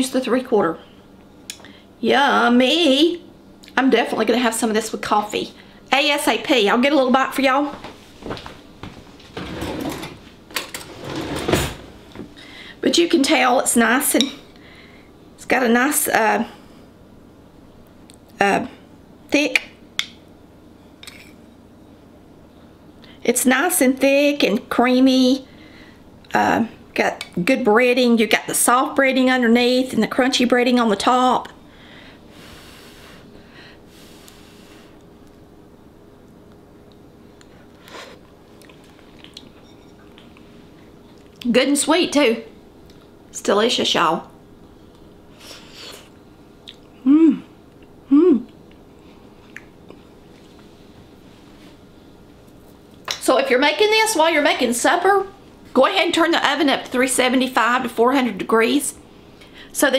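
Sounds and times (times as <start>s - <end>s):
faint steady hum: 0.0s - 59.9s
bowl and spoon rustling: 38.0s - 40.6s.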